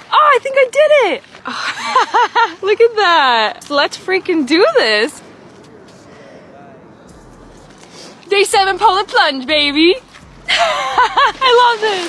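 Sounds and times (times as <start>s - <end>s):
quiet beach background: 0.0s - 12.0s
low rumble: 6.5s - 12.0s
fleece jacket rustling: 10.0s - 12.0s.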